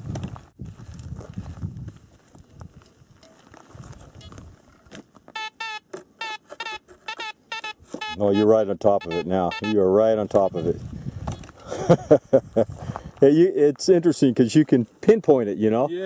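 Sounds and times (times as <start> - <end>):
metal detector short bending beeps: 5.4 - 9.8, 10.4 - 11.5.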